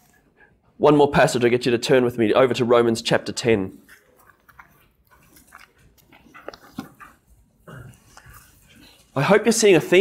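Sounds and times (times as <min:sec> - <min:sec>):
pages being turned: 0:03.9 - 0:07.2.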